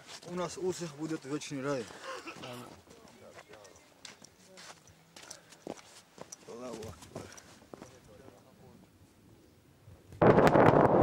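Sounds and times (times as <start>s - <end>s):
footsteps on muddy snow: 0.0s - 8.0s.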